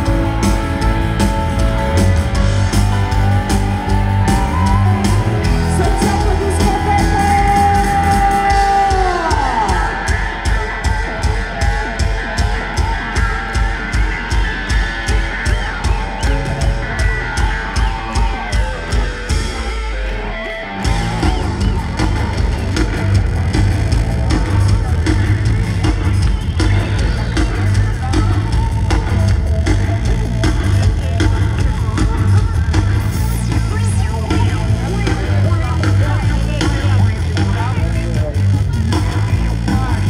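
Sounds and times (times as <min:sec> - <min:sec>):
drum beat: 0:00.0 - 0:19.8, 0:20.8 - 0:40.0
live rock band playing: 0:00.0 - 0:40.0.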